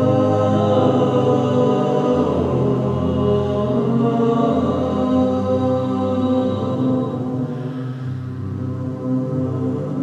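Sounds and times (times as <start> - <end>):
choir holding sustained chords: 0.0 - 10.0.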